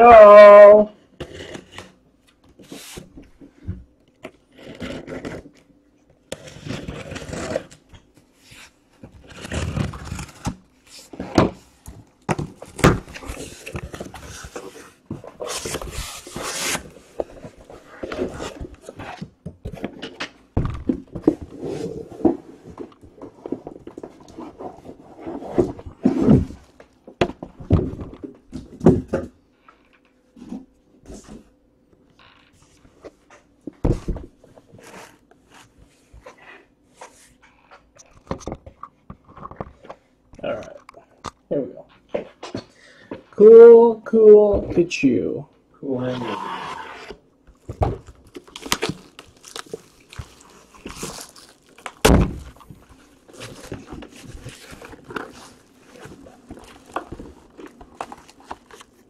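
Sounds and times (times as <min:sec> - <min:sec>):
cardboard scraping and tearing: 0:04.4 - 0:05.6, 0:06.3 - 0:11.6, 0:12.4 - 0:19.3, 0:21.2 - 0:26.8, 0:46.0 - 0:59.0
box knocks and rustles: 0:47.5 - 0:58.9.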